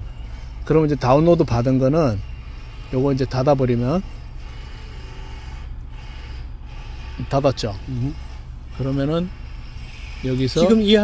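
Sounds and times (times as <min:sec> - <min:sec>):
low hum inside car: 0:00.0 - 0:11.0.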